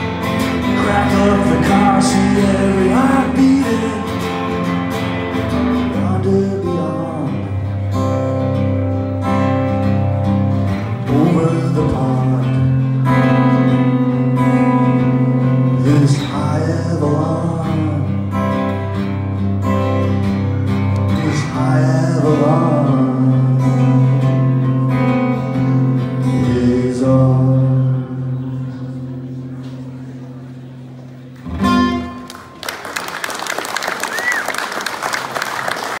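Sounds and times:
acoustic guitar strumming: 0.0 - 32.6
person singing: 0.5 - 4.6, 5.8 - 7.7, 11.0 - 13.6, 15.4 - 18.6, 21.0 - 25.0, 25.6 - 29.1
audience applause: 32.2 - 36.0.

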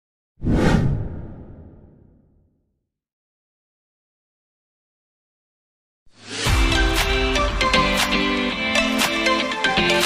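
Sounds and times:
whoosh with low rumble: 0.4 - 2.5.

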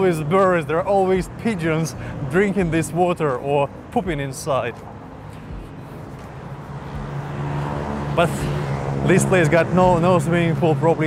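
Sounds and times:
street noise: 0.0 - 11.0
vehicle engine hum: 0.0 - 11.0.

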